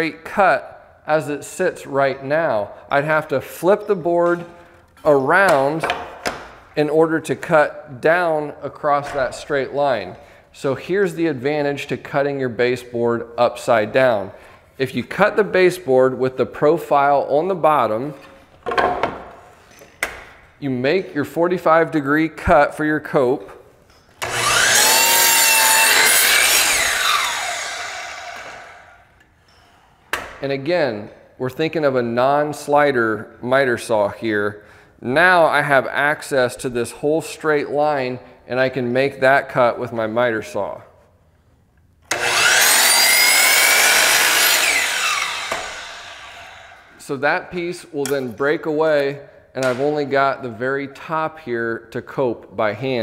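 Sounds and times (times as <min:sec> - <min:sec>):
miter saw cutting wood: 0:24.2 - 0:29.0, 0:42.1 - 0:47.0.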